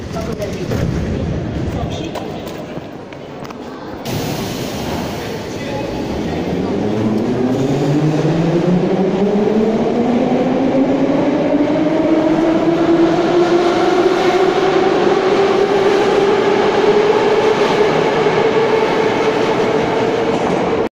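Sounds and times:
train wheels on rails: 0.0 - 20.9.

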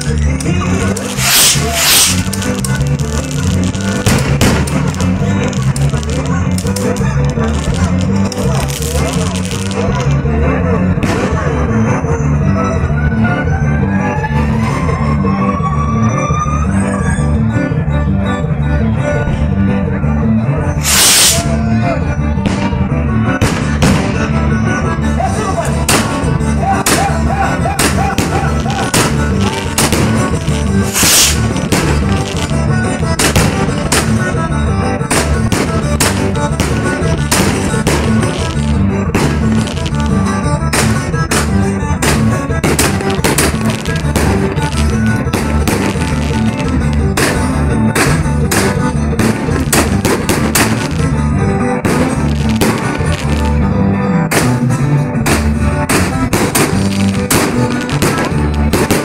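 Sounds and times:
firework bangs and crackles: 0.0 - 10.3, 10.9 - 12.0, 20.8 - 21.6, 22.3 - 24.6, 25.3 - 53.6, 54.3 - 59.0
music with steady beat: 0.0 - 12.0, 17.3 - 59.0.

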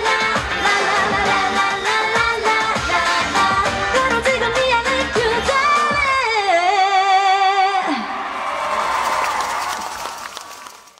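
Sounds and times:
pop song backing beat: 0.0 - 7.9.

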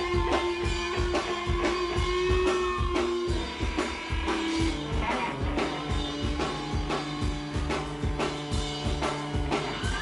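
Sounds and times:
drum kit beating steadily: 0.0 - 10.0.

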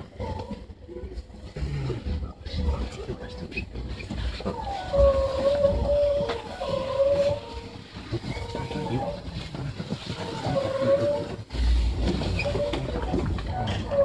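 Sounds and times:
train rumble: 0.0 - 14.0.

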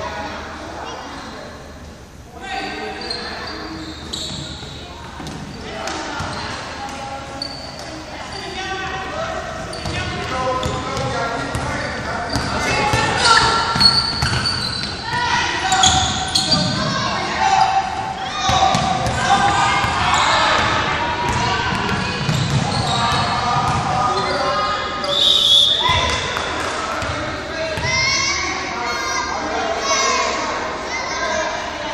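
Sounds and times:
indistinct chatter: 0.0 - 31.9.

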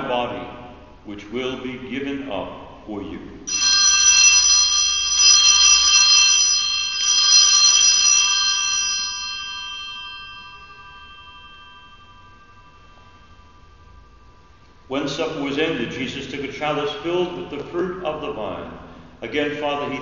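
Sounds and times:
altar bells ringing: 3.5 - 15.6.

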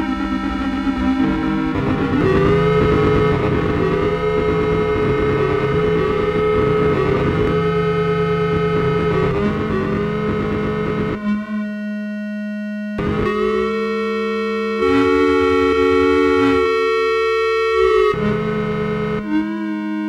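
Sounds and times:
electronic computer music chords: 0.0 - 20.0.

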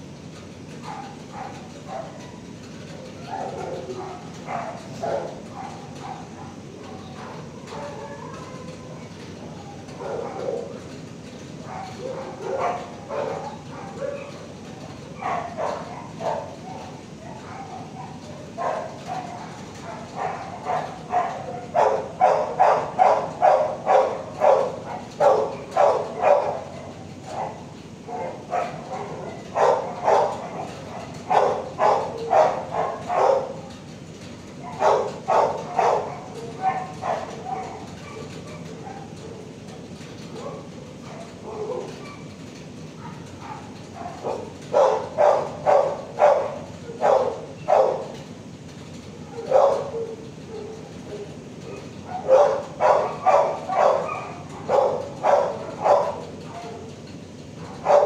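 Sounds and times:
dogs barking: 0.6 - 58.0.

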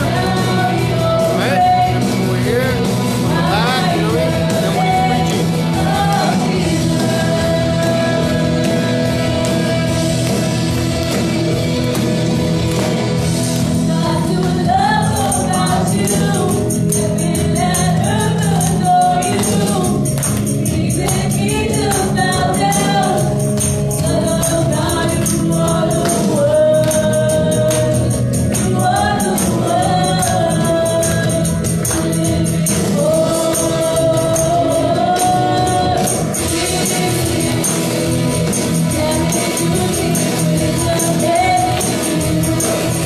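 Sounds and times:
band playing: 0.0 - 43.0
tambourine beat: 0.0 - 43.0
woman singing lead: 0.0 - 43.0.

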